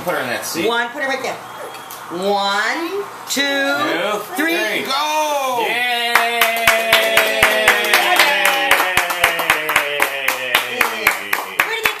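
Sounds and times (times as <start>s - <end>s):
long vocal cheer: 5.0s - 12.0s
hands clapping quickly: 6.1s - 12.0s.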